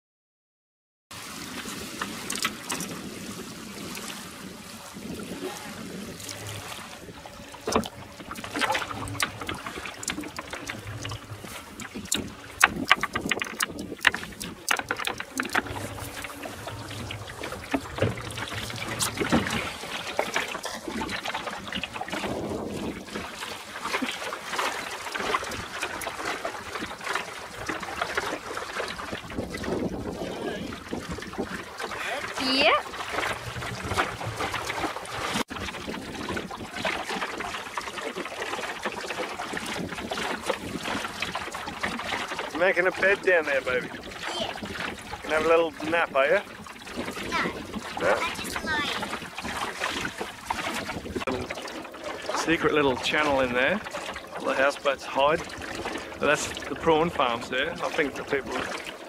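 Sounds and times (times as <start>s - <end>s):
water washing along boat hull: 1.1s - 59.0s
wind on microphone: 1.4s - 24.0s, 25.2s - 37.5s, 39.2s - 42.2s, 43.6s - 51.5s
sharp knocks: 12.1s - 16.3s.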